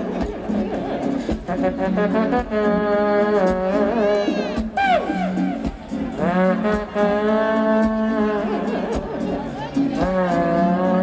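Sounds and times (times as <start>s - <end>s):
band backing: 0.0s - 11.0s
trumpet improvising: 1.4s - 9.2s.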